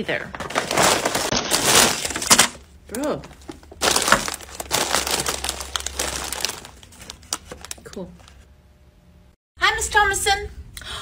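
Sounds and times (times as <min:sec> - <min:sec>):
plastic chip bags crinkling: 0:00.3 - 0:08.1.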